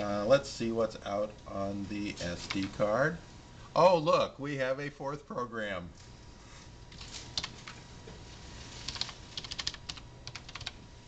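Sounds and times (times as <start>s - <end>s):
typing on computer keyboard: 8.9s - 10.8s.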